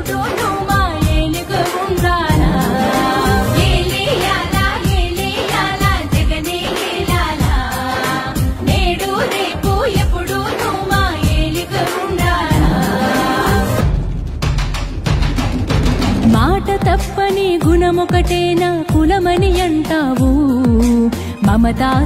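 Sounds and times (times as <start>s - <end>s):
music with a steady beat: 0.0s - 22.0s
person singing: 1.3s - 4.8s, 11.5s - 13.8s.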